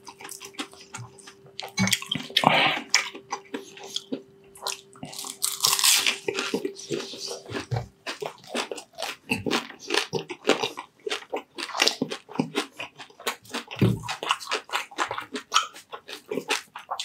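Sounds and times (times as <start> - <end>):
crackling chewing: 0.0 - 17.0.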